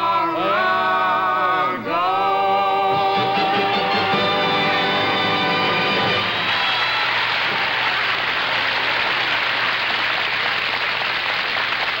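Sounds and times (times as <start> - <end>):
audience applauding: 5.6 - 12.0.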